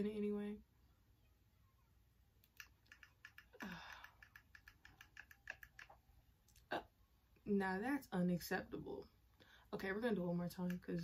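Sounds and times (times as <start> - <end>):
hair crackling in curling iron: 2.6 - 6.0.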